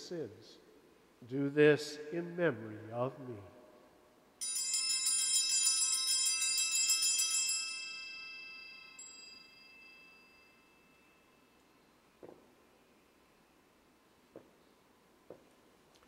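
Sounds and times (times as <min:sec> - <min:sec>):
hand bells jangling: 0:04.4 - 0:11.6.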